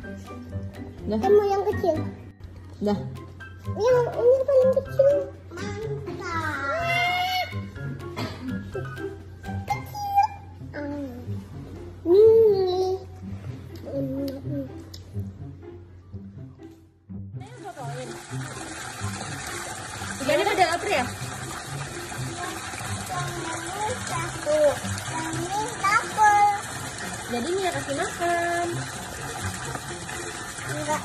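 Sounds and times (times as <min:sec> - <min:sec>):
child calling out and squealing: 0:06.6 - 0:07.6, 0:09.8 - 0:10.5
running water rushing: 0:17.4 - 0:31.0.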